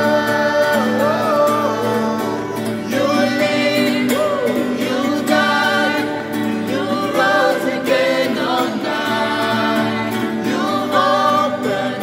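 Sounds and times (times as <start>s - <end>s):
group singing in harmony: 0.0s - 12.0s
strummed acoustic guitar: 0.0s - 12.0s.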